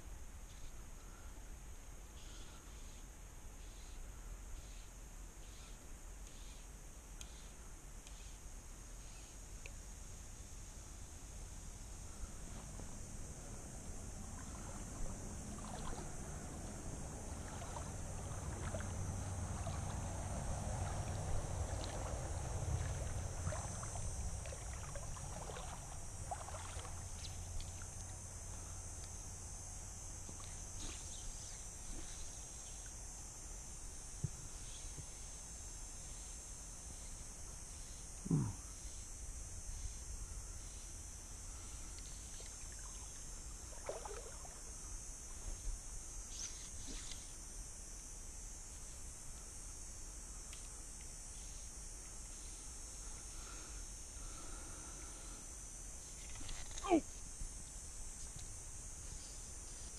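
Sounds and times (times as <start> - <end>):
high-pitched insect buzz: 0.0 - 0.8, 4.6 - 9.9, 10.7 - 59.9.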